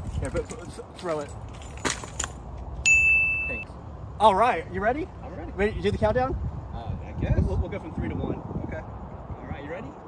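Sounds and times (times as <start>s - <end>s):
high-pitched ding: 2.8s - 3.6s.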